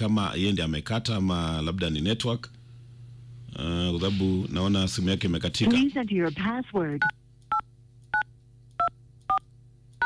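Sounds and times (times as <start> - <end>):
faint steady low hum: 0.0 - 10.0.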